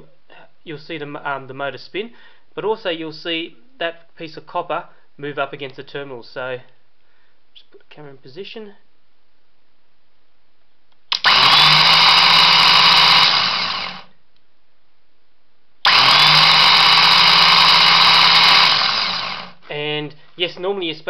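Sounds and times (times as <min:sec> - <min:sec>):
contactor closing: 0:11.1 - 0:14.0, 0:15.9 - 0:19.6
electric motor whining: 0:11.2 - 0:14.1, 0:15.9 - 0:19.6.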